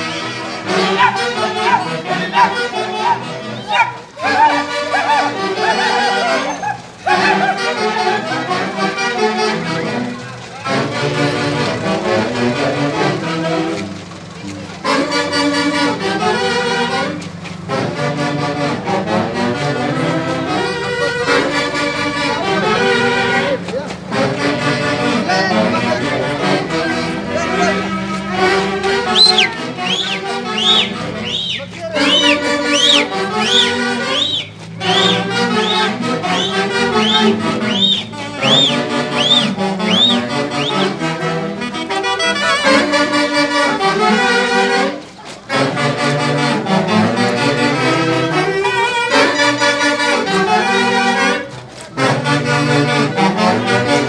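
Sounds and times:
wind instruments playing melody: 0:00.0 - 0:54.0
high swooping calls: 0:00.6 - 0:07.6, 0:27.6 - 0:41.0.

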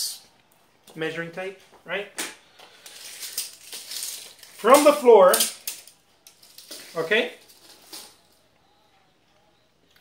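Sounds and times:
tape measure blade rattling: 0:02.8 - 0:08.2.

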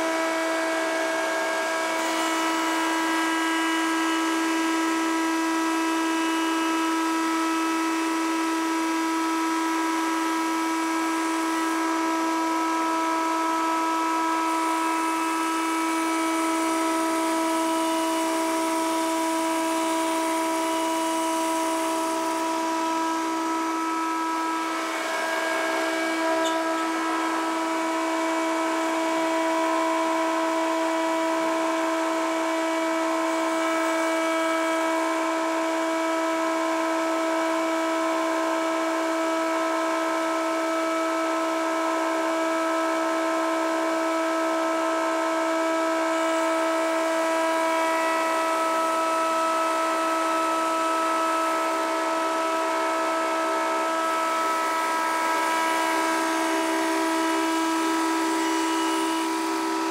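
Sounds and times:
router high whine: 0:00.0 - 0:59.9.

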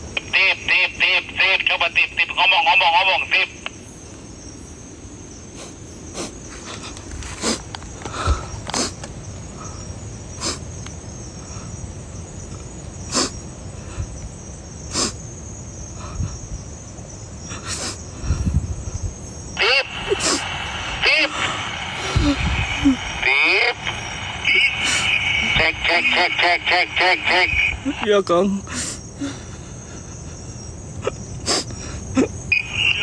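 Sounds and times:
night insects chorus: 0:00.0 - 0:33.0
person speaking: 0:19.6 - 0:29.4.

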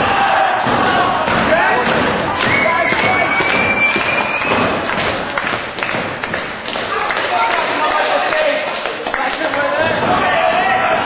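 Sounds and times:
loud noisy crowd: 0:00.0 - 0:11.0
long high whistle: 0:02.4 - 0:04.6.

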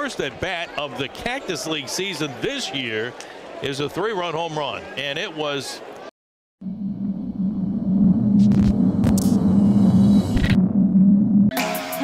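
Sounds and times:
low rumbling drone: 0:06.6 - 0:11.5.

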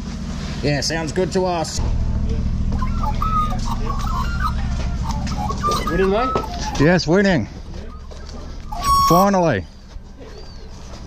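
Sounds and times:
engine drone: 0:00.0 - 0:11.0
faint high chirps: 0:02.7 - 0:07.0
man talking: 0:05.8 - 0:08.0, 0:09.0 - 0:09.7.

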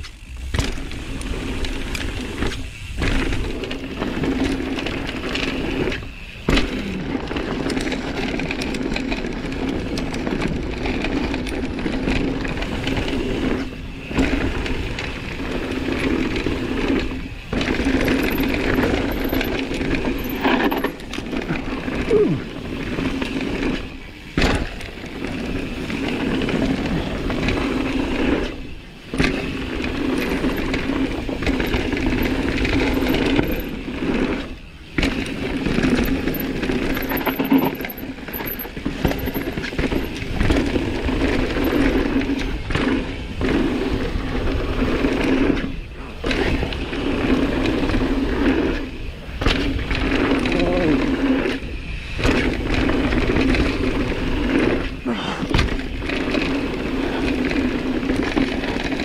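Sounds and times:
bicycle freehub ratchet buzzing: 0:00.0 - 0:55.0
tyres rattling over stones: 0:00.0 - 0:59.0.

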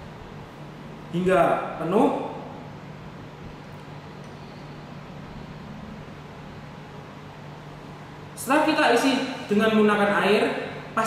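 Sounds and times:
low constant hum: 0:00.0 - 0:11.0.

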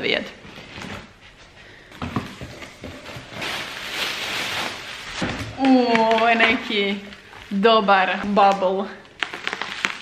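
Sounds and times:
paper and bubble wrap rustling: 0:02.2 - 0:10.0.

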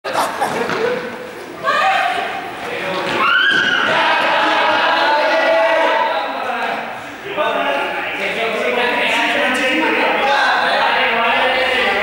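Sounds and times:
young players shrieking and yelling: 0:01.6 - 0:06.4.

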